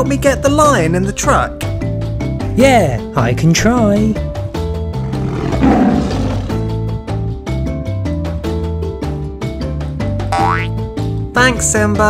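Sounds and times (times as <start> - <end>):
background music: 0.0 - 12.0
lion roar: 5.0 - 6.9.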